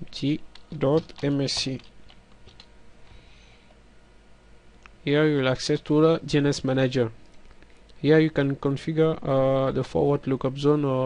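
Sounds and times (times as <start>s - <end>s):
computer keyboard keystrokes: 0.5s - 2.7s.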